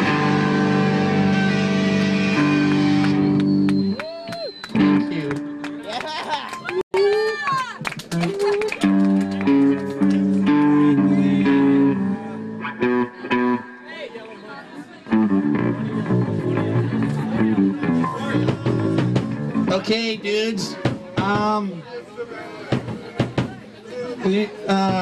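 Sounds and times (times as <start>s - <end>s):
punk band electric guitar and bass: 0.0s - 3.9s, 8.9s - 13.6s, 15.1s - 19.9s
indistinct voices: 9.4s - 25.0s.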